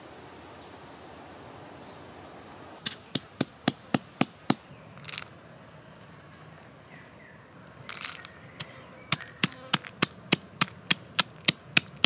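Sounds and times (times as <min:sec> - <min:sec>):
peanuts dropping into a bowl: 0:05.0 - 0:05.3, 0:07.9 - 0:12.0
short scattered rattle: 0:05.0 - 0:05.3, 0:07.9 - 0:08.7
sharp knocks: 0:08.6 - 0:12.0.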